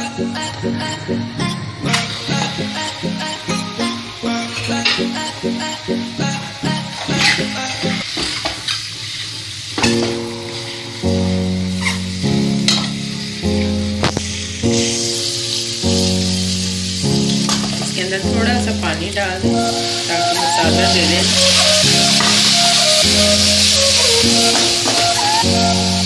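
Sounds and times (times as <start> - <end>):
background music: 0.0 - 8.2, 9.8 - 26.0
eggs sizzling in hot oil: 1.8 - 26.0.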